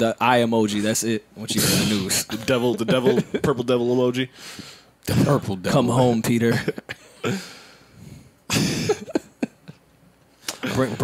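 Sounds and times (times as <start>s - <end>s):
faint breath: 4.3s - 4.9s, 7.3s - 8.4s
man coughing: 6.5s - 7.5s, 8.5s - 9.3s.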